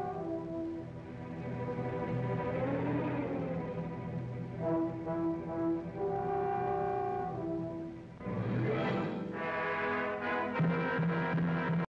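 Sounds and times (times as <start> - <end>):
orchestral music with brass: 0.0 - 11.9.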